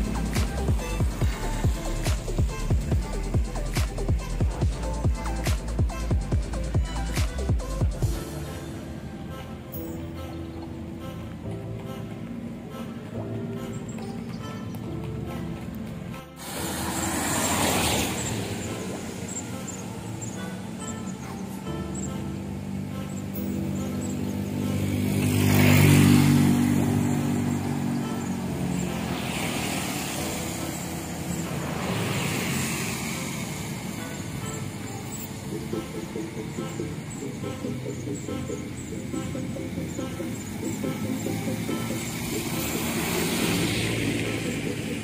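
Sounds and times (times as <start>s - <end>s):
background music: 0.0s - 45.0s
cars passing on wet road: 14.7s - 45.0s.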